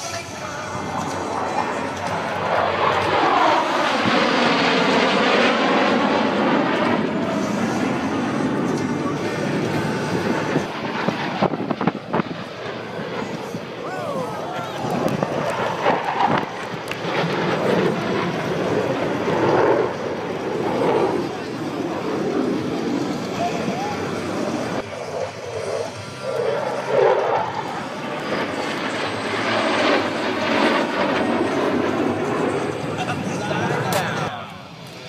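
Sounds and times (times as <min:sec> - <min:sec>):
jet engines roaring: 0:00.0 - 0:35.0.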